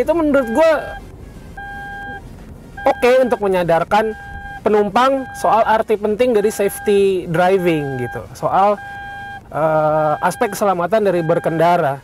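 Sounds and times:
low road noise: 0.0s - 12.0s
seat belt reminder beeping: 0.4s - 1.0s, 1.6s - 2.2s, 2.8s - 3.5s, 4.1s - 11.8s.

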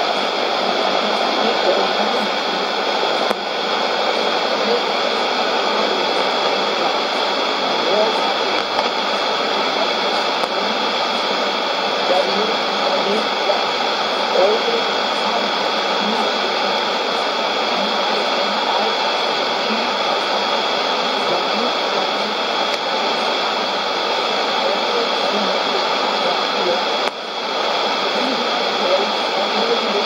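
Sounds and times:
loud radio static: 0.0s - 30.0s
weak voice on radio: 0.0s - 30.0s.

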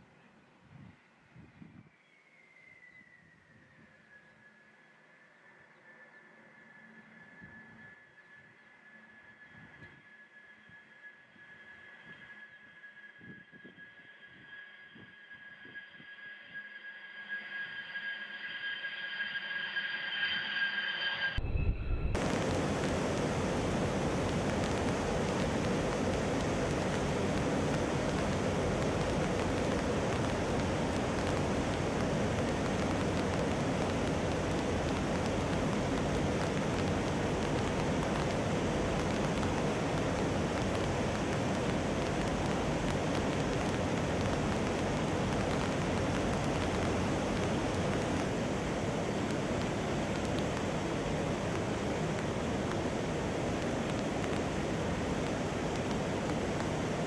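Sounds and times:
jet engines whining: 17.6s - 57.0s.

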